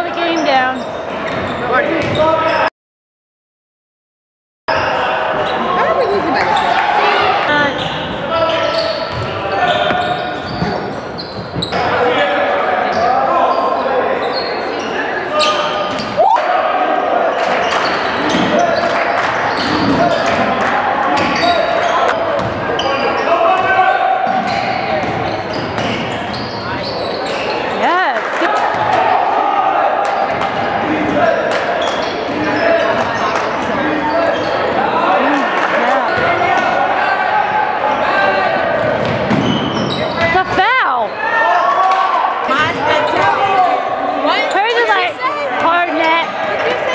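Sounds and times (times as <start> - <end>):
chatter and calls of people: 0.0 - 2.7, 4.7 - 46.9.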